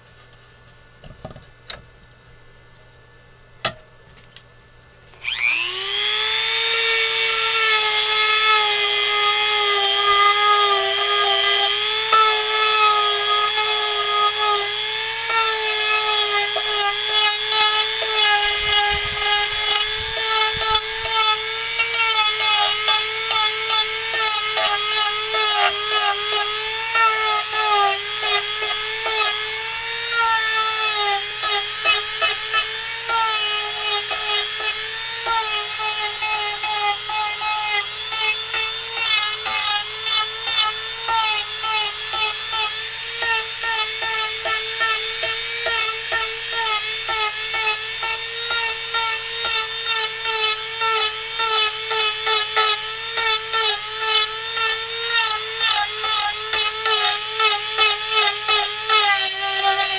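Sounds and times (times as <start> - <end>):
rotary tool whining: 5.1 - 59.9
spinning bit biting into wood: 13.6 - 29.5.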